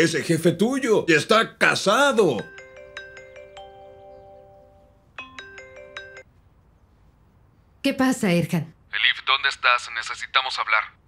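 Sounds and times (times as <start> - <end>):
phone ringtone chimes: 2.3 - 6.3.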